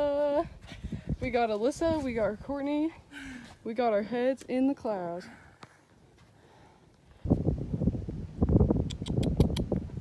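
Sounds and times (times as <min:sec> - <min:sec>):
wind buffeting microphone: 0:00.0 - 0:03.0, 0:07.1 - 0:10.0
sharp clicks: 0:08.8 - 0:09.8.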